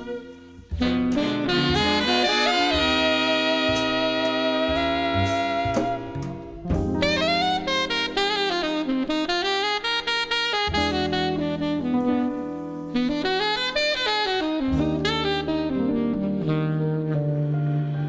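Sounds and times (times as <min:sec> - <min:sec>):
jazz combo playing: 0:00.0 - 0:18.0
saxophone quick melodic runs: 0:00.0 - 0:18.0.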